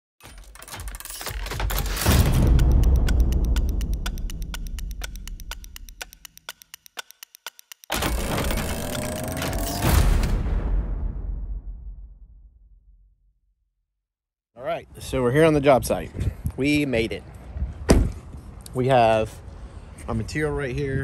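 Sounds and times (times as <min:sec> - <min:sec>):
rapid ticking: 0:00.5 - 0:09.9
rising tone: 0:07.9 - 0:10.3
heavy impact hits: 0:08.0 - 0:12.8.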